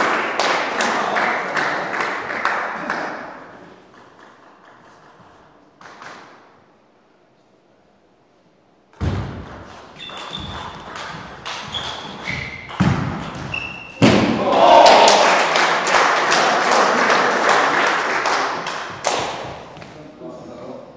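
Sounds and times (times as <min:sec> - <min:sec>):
crowd clapping: 0:00.0 - 0:03.4, 0:14.4 - 0:19.7
thud: 0:09.0 - 0:09.7, 0:12.7 - 0:14.4
shoes squeaking on floor: 0:09.7 - 0:14.1
people shouting: 0:14.2 - 0:15.4.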